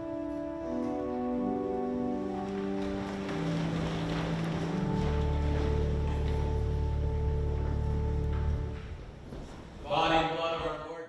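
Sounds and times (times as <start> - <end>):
church organ playing: 0.0 - 9.8
congregation rustling: 0.0 - 11.0.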